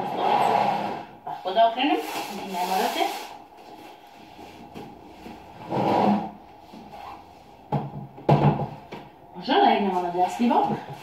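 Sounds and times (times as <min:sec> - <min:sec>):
rubbing scrape: 0:00.0 - 0:07.6.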